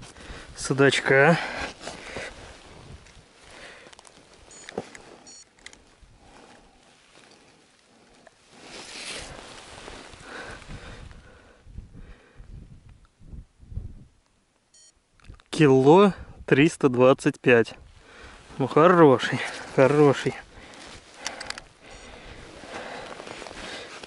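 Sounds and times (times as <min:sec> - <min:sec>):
rustling and handling noise: 0:00.0 - 0:10.9, 0:18.4 - 0:24.0
short high electronic beeps: 0:14.8 - 0:15.0.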